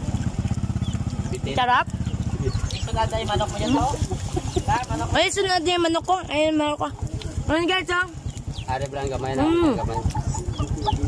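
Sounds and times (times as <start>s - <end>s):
chickens clucking: 0.5s - 5.8s, 6.9s - 11.0s.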